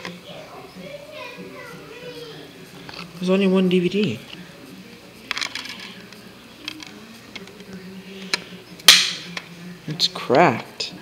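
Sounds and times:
loud sharp plastic snap: 8.9 - 9.5.

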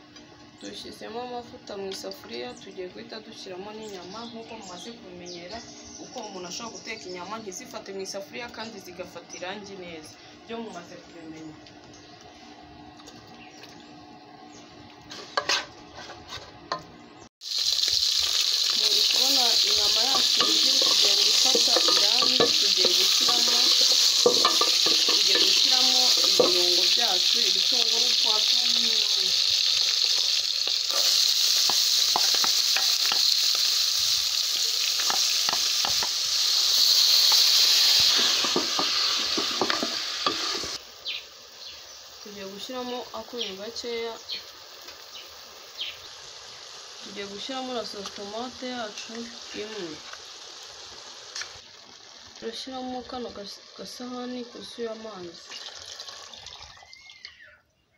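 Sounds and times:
meat sizzling in hot oil: 17.4 - 57.2
stew simmering with hiss: 17.4 - 57.5.

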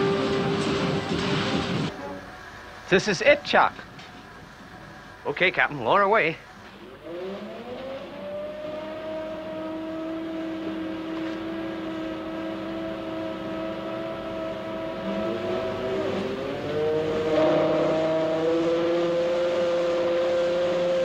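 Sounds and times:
winch motor whining: 5.9 - 21.0.

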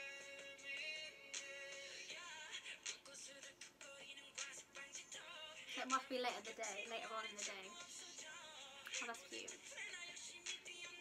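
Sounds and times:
pop song with vocals over beat: 0.0 - 11.0.

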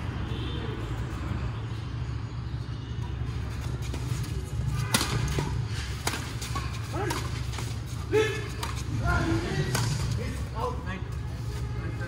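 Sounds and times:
racket striking shuttlecock: 4.8 - 8.9, 9.6 - 10.1.

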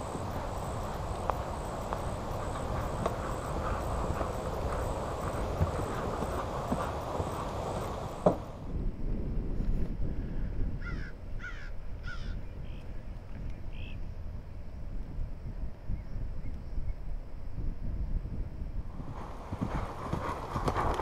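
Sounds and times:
outdoor rushing noise: 0.0 - 9.8, 18.9 - 21.0.

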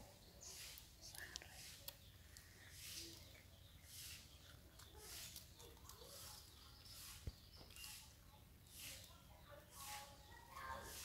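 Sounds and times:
faint chirp: 0.0 - 11.0.

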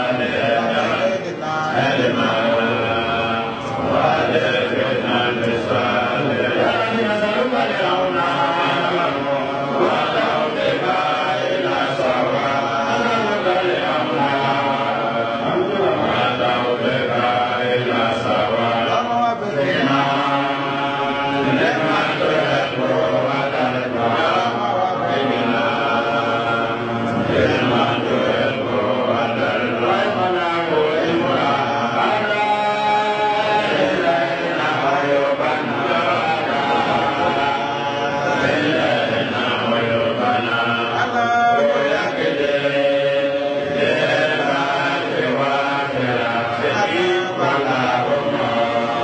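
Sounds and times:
person chanting long held notes: 0.0 - 49.0.

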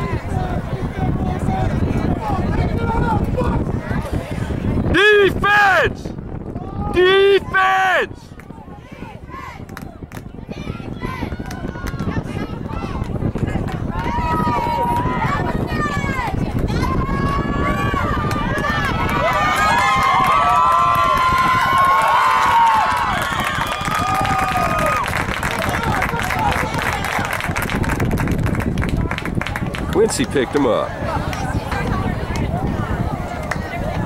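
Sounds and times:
spectators shouting and cheering: 0.0 - 34.0.

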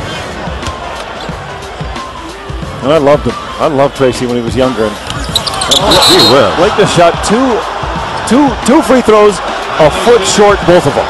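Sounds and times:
arena crowd noise: 0.0 - 11.0
music: 0.0 - 11.0.

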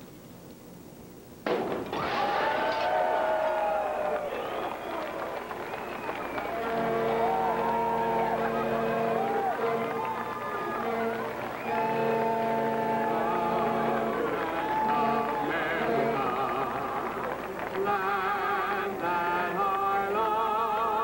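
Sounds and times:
bottle smashing: 1.5 - 2.9
crowd cheering: 1.8 - 20.5
boat horns sounding: 5.7 - 19.5.

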